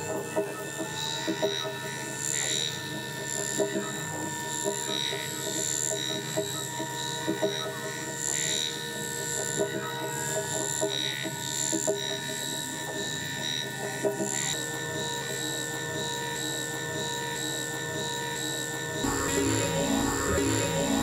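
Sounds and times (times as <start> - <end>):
electronic drone music: 19.0 - 21.0.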